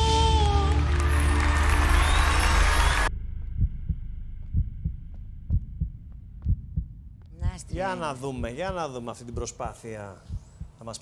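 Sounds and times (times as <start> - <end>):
loud music: 0.3 - 3.2
heartbeat-style low thumps: 3.1 - 11.0.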